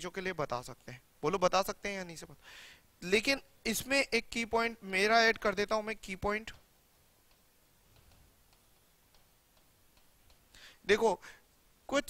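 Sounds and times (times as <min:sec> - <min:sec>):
person speaking: 0:00.0 - 0:02.4, 0:03.0 - 0:12.0.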